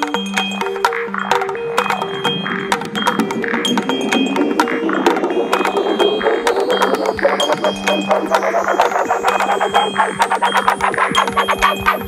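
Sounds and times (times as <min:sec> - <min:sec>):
electronic music with steady beat: 0:00.0 - 0:12.0
high rising synth sweep: 0:02.1 - 0:11.5.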